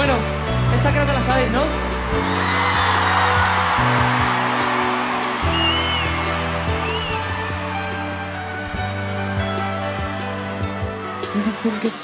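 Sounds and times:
crowd cheering and screaming: 0.0 - 12.0
live band playing pop ballad: 0.0 - 12.0.

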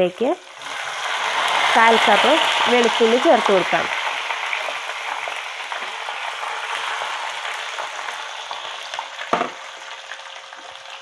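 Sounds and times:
chillies sizzling in oil: 0.0 - 11.0
brief knock: 9.3 - 9.6.

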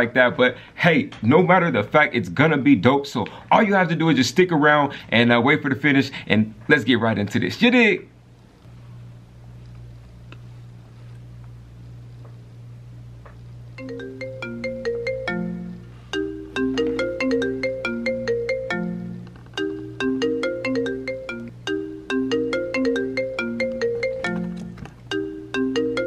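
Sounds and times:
low steady hum: 0.0 - 26.0
chiming ringtone melody: 13.8 - 26.0.

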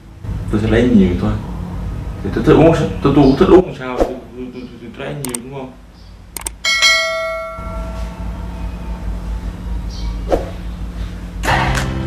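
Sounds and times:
low steady hum: 0.0 - 12.0
bell chime: 6.6 - 8.6.

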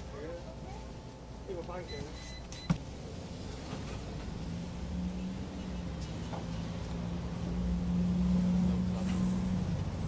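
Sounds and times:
low hum of shop: 0.0 - 10.0
checkout beep: 1.8 - 2.9.

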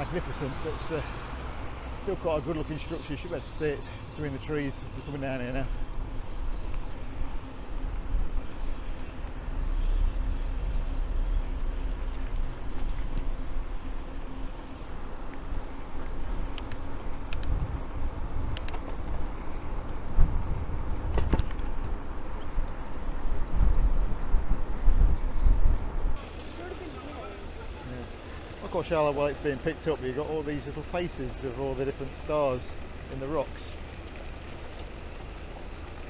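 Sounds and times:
tyre and road rumble: 0.0 - 36.0
bike clicking over bumps: 11.1 - 27.4
wind buffeting microphone: 16.4 - 26.2.

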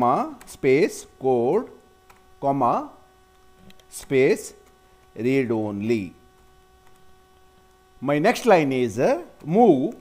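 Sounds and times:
faint mains hum: 0.0 - 10.0.

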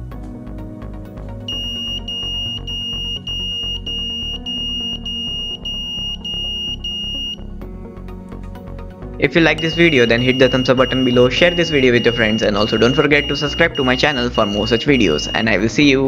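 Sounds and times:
background music: 0.0 - 16.0
high-pitched buzzer beeps: 1.5 - 7.4, 9.6 - 15.4.

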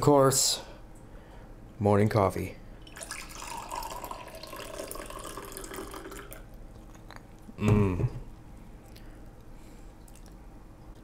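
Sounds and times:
coffee pouring into a mug: 2.8 - 6.4.

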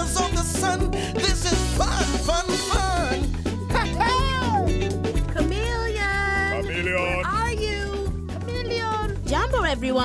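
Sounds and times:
background music with bass: 0.0 - 10.0
high wordless gliding voice: 5.9 - 9.0.

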